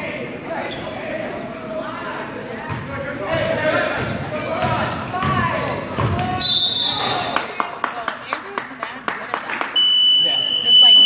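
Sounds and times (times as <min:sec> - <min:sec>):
basketball bouncing on hardwood floor: 0:04.6 - 0:06.3
scoreboard buzzer: 0:09.8 - 0:11.0.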